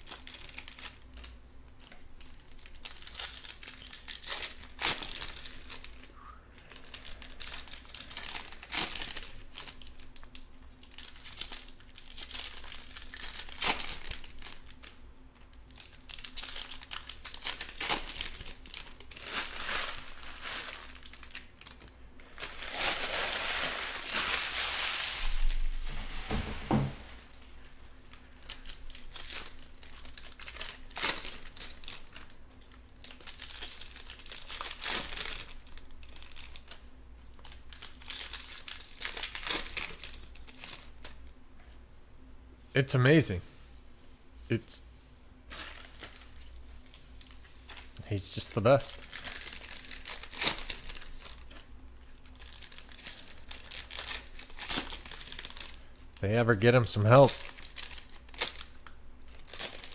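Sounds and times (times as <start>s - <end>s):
card pack wrappers crinkling: 0.0s - 26.4s, 27.0s - 41.3s, 45.5s - 59.9s.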